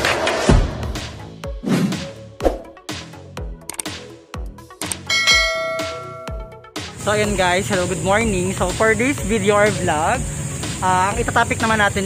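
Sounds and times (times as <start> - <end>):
intro music with steady beat: 0.3 - 7.9
bell-like chime: 5.1 - 6.6.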